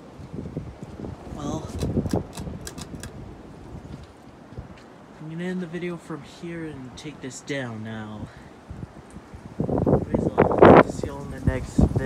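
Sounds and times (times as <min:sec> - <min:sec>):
pull-chain switch clicks: 0:01.7 - 0:03.2.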